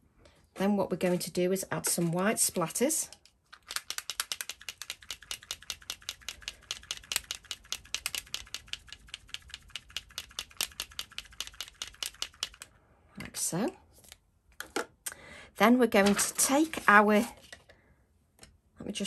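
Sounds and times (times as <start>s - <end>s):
rapid tapping of tool: 4.0s - 12.6s.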